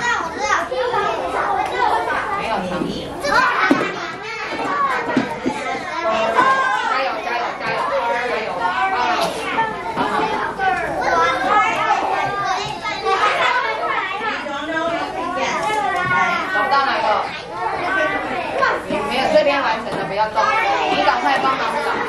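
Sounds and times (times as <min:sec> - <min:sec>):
children talking and calling out: 0:00.0 - 0:22.0.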